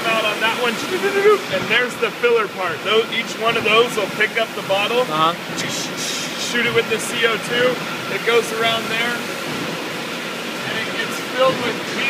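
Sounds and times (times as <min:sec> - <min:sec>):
bottle filler machine noise: 0:00.0 - 0:12.0.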